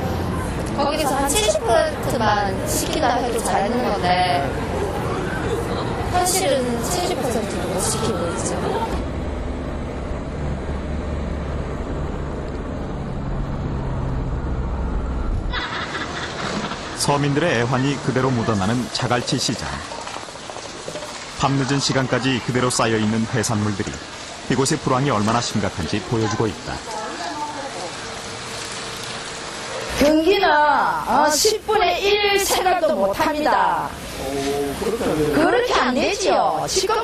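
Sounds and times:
road and engine rumble: 0.0s - 30.2s
hissy outdoor background: 0.0s - 37.0s
low hum: 8.2s - 17.0s.

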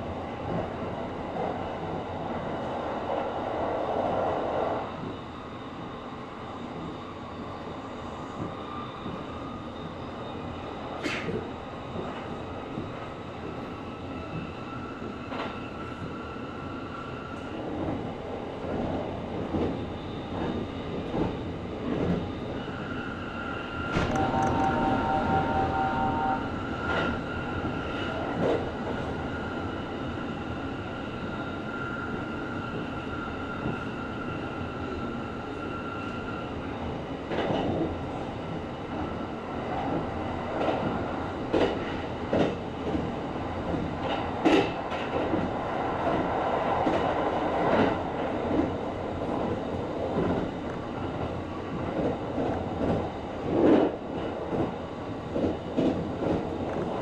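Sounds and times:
train running rumble: 23.9s - 29.2s.

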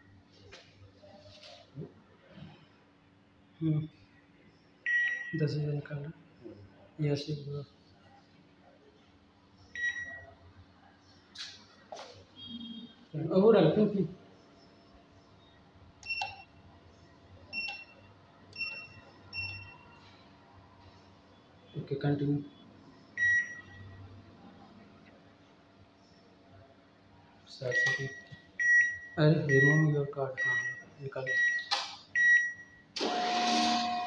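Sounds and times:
keypad beeps: 4.9s - 5.3s, 16.0s - 16.5s, 17.5s - 18.0s, 18.6s - 19.9s, 27.7s - 29.8s
atm reminder beep: 27.7s - 34.0s.

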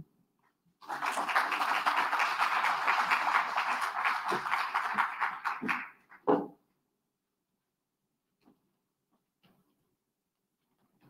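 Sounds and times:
audience applauding: 0.8s - 6.2s.

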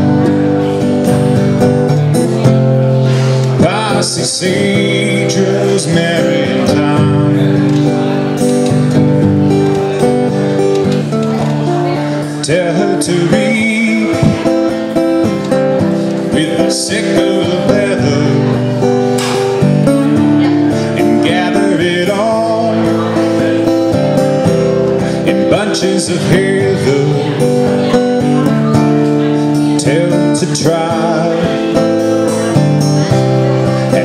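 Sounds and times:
acoustic guitar playing: 0.0s - 34.0s
man singing: 2.0s - 10.7s, 11.4s - 34.0s.

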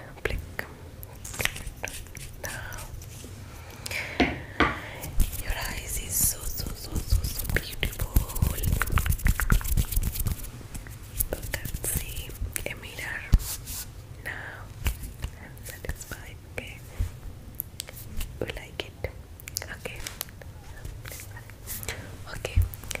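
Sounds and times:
close-up whispering: 0.0s - 3.0s, 4.8s - 9.7s, 11.2s - 13.4s, 14.2s - 17.1s, 17.8s - 23.0s.

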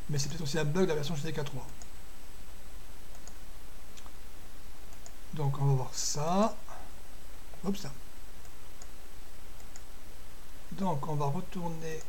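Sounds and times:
low background hum: 0.0s - 12.0s
faint computer mouse clicks: 1.6s - 1.9s, 3.1s - 4.2s, 4.9s - 5.2s, 8.4s - 9.0s, 9.6s - 9.9s.

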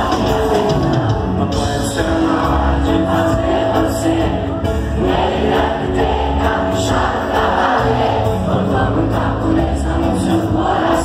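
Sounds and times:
crowd singing along: 0.0s - 11.0s
live band playing reggae-pop: 0.0s - 11.0s.

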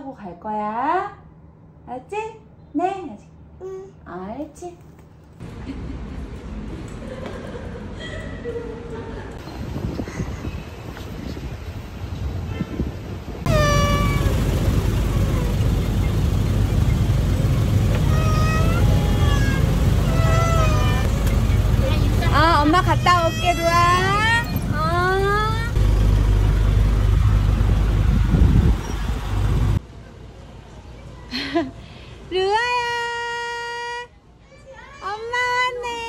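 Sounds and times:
bus engine rumble: 5.2s - 31.3s
small child crying: 13.5s - 14.4s, 17.9s - 21.2s, 22.6s - 25.8s.

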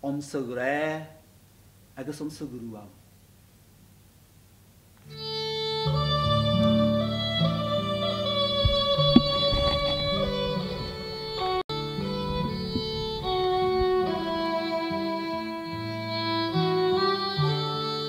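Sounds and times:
fiddle and guitar music: 5.0s - 18.0s.

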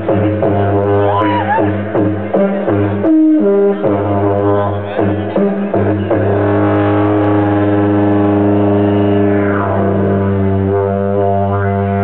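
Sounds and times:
didgeridoo drone: 0.0s - 12.0s.

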